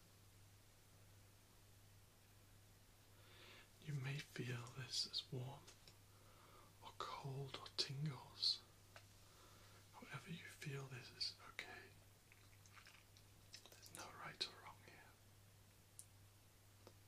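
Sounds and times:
faint low hum: 0.0 - 17.0
soft whispering: 3.1 - 12.1, 12.8 - 15.3
wet mouth sounds: 12.3 - 14.0.

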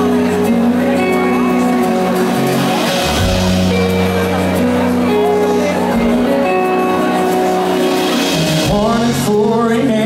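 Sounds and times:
acoustic guitar chords: 0.0 - 10.0
man singing: 8.3 - 10.0.

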